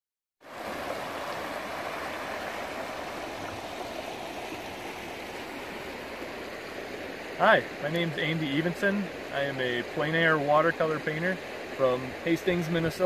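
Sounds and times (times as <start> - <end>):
river rushing over stones: 0.4 - 13.0.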